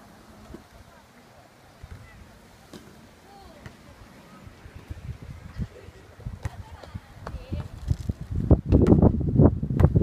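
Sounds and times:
faint distant voices: 0.0 - 7.8
wind buffeting microphone: 3.9 - 10.0.

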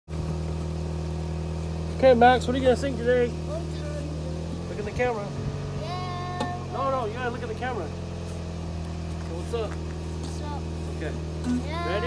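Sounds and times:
vehicle engine idling: 0.1 - 12.0.

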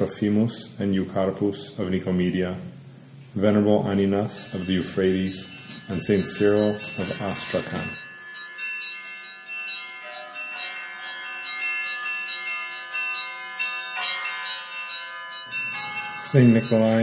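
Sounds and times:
bells ringing: 3.4 - 17.0.

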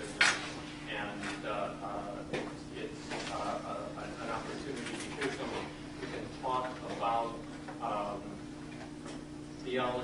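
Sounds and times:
steady low hum: 0.0 - 10.0
man speaking: 0.9 - 8.4, 9.6 - 10.0.

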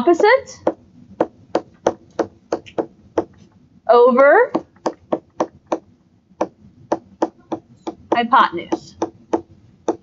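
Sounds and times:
stylus tapping on tablet screen: 0.0 - 3.5, 4.5 - 10.0.

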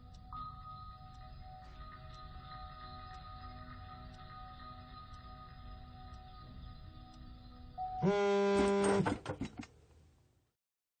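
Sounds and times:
loud buzzing tone: 8.0 - 9.2.

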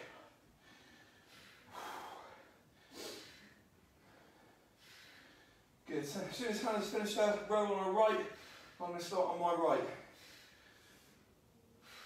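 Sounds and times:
person breathing hard: 0.0 - 5.8, 10.0 - 12.0.

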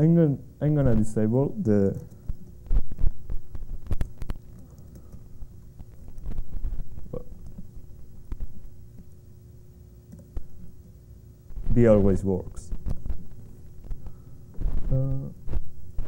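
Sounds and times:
faint steady hum: 0.0 - 16.0
laptop keyboard typing: 1.8 - 9.2.

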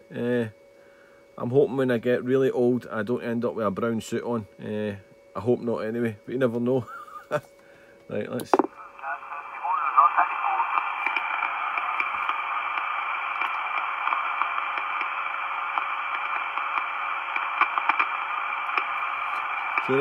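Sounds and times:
radio static hiss: 0.0 - 20.0
garbled radio voices: 8.5 - 18.1
radio whistles: 8.8 - 20.0.

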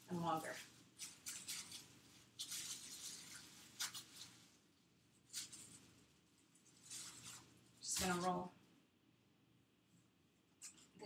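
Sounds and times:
hands kneading icing: 0.0 - 9.0.

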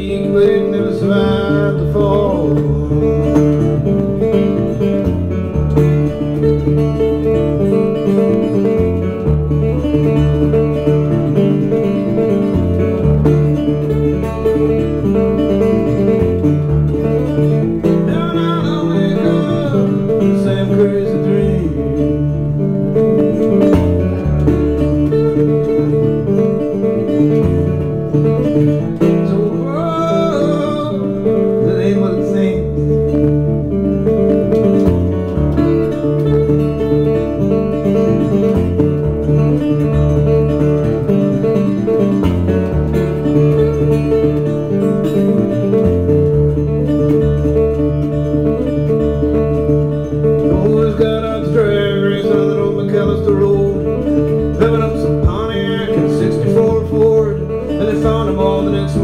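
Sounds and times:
fingerpicked acoustic guitar: 0.0 - 59.0.

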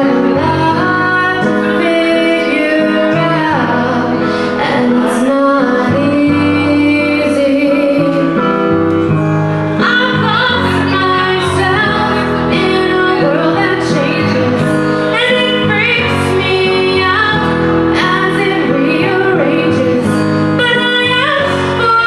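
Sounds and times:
piano accompaniment: 0.0 - 22.0
woman singing pop song: 0.0 - 22.0.

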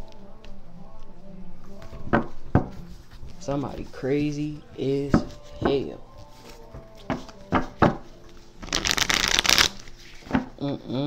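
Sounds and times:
cards being shuffled: 5.2 - 10.5.

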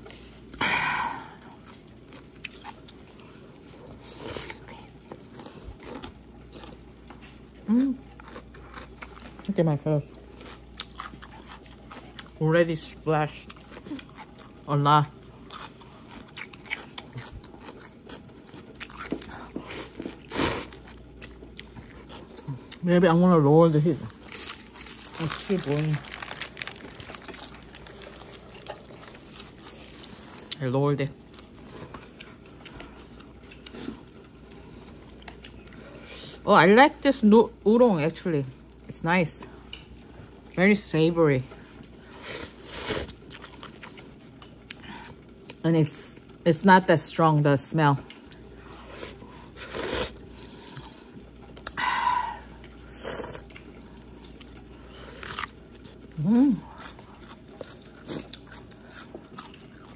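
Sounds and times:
slurping and chewing noodles: 1.4 - 9.5, 13.3 - 22.8, 24.1 - 30.6, 48.1 - 51.8, 52.4 - 59.9.

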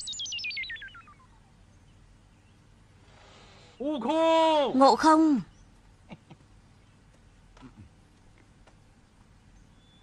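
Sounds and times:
warbling synth chirps falling: 0.0 - 1.6.

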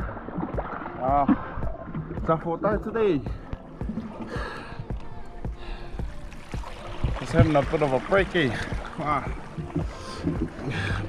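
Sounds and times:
water lapping and sloshing: 0.0 - 11.0.

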